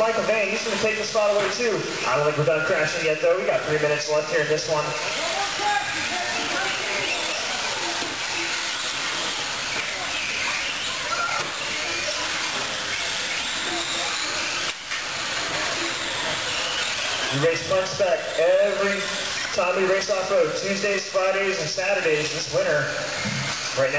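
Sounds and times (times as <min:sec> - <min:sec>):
electric motors whining: 0:00.0 - 0:23.9.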